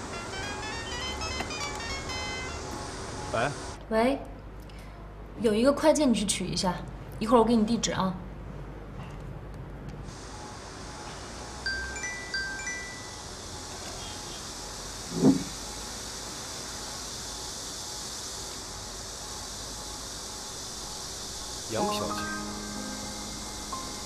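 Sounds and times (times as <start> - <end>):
steady hiss: 10.0 - 24.0
phone message chime: 21.8 - 24.0.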